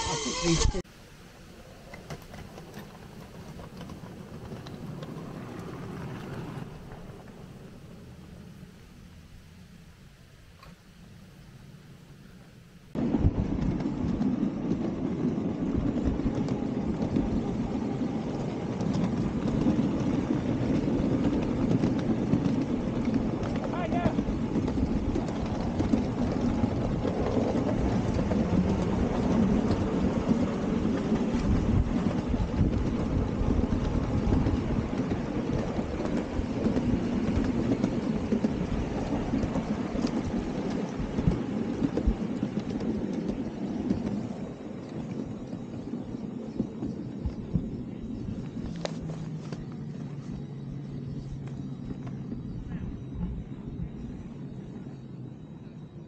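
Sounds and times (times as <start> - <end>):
train wheels rumbling on rail: 1.8 - 56.0.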